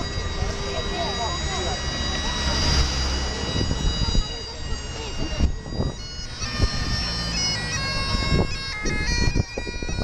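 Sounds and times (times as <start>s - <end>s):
passers-by chatter: 0.0s - 10.0s
road traffic rumble: 0.0s - 10.0s.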